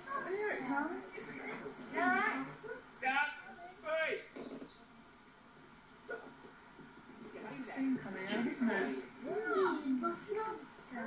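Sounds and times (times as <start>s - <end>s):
small bird chirping: 0.0s - 5.0s, 9.4s - 11.0s.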